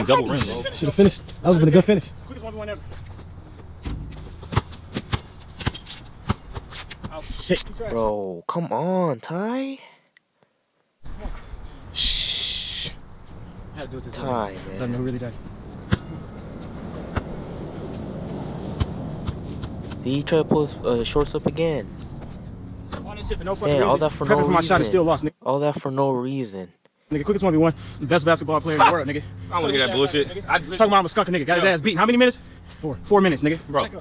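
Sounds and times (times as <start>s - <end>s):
basketball bouncing on asphalt: 2.8s - 7.2s, 15.4s - 20.6s
basketball bouncing on hard court: 3.9s - 6.6s.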